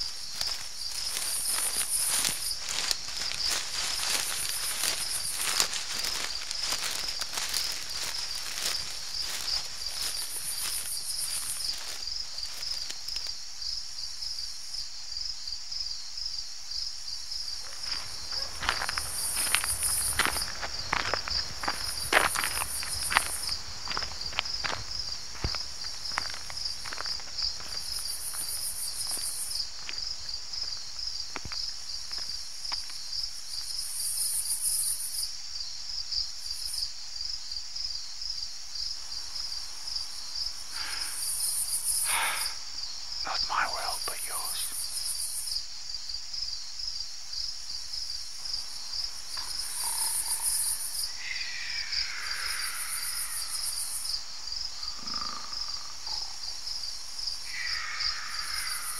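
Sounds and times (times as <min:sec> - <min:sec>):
footsteps: 0:00.0 - 0:13.4, 0:17.6 - 0:33.0
crickets chirring: 0:00.0 - 0:58.9
high insect trill: 0:00.0 - 0:58.9.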